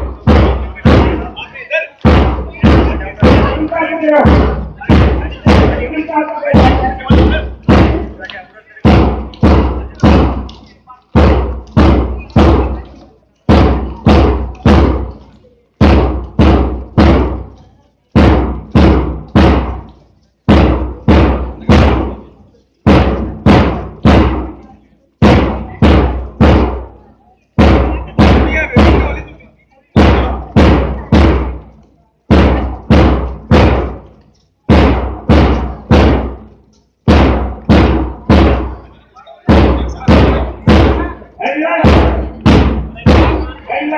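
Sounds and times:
drum beating marching cadence: 0.0s - 43.9s.

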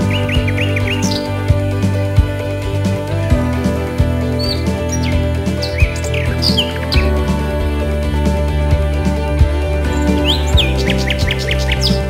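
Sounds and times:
bird chirps: 0.0s - 1.4s, 4.4s - 7.1s, 9.9s - 12.0s
instrumental background music: 0.0s - 12.0s.

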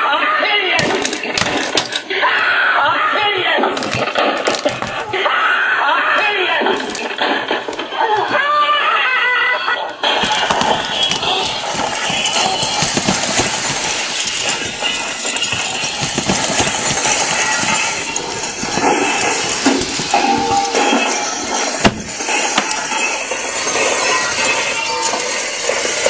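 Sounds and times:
crashing and knocking: 0.8s - 2.1s, 10.0s - 23.1s.

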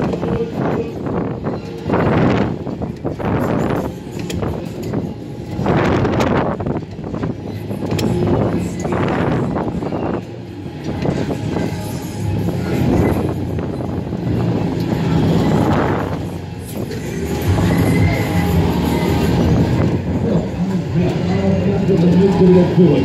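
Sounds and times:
fairground ride music: 0.0s - 23.0s
wind rushing on microphone: 0.0s - 23.0s.

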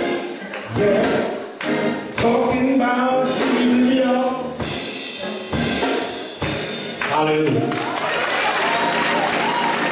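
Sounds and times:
drum kit hits ringing out: 0.0s - 7.6s.

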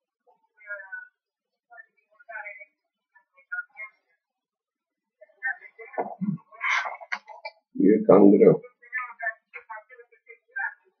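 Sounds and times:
man talking: 7.8s - 8.6s.

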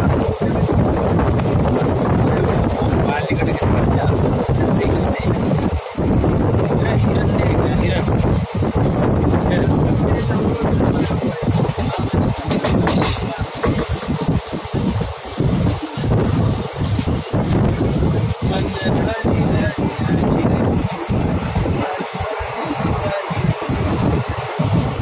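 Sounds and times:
train running noise: 0.0s - 25.0s
wind buffeting microphone: 0.0s - 25.0s.

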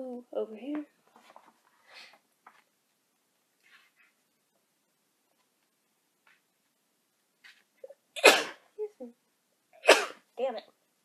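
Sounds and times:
woman sneezing: 8.2s - 8.6s.

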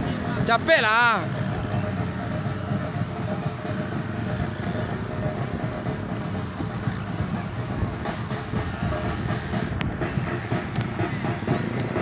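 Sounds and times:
music with drum beat: 0.0s - 12.0s.

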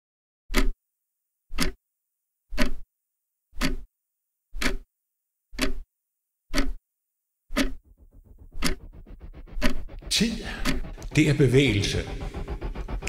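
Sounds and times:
clock ticking: 0.5s - 0.8s, 1.5s - 1.8s, 2.5s - 2.8s, 3.6s - 3.9s, 4.6s - 4.9s, 5.6s - 5.8s, 6.5s - 6.8s, 7.5s - 13.0s.

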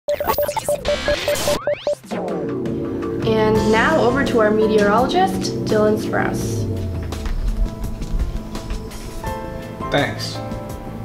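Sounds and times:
stuttering electronic beep: 0.0s - 2.7s
crackling static: 0.1s - 1.9s
tones sweeping upward: 0.1s - 7.0s.

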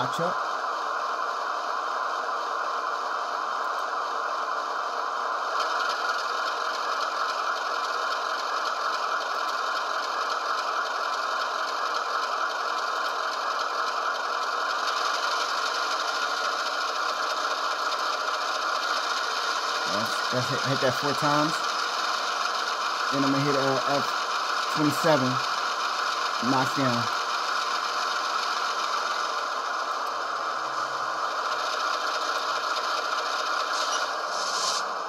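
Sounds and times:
model train diesel engine sound: 0.0s - 35.0s.

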